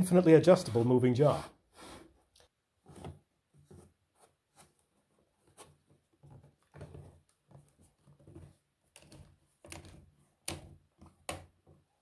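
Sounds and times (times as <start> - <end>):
plastic parts clicking and rattling: 6.4 - 11.4.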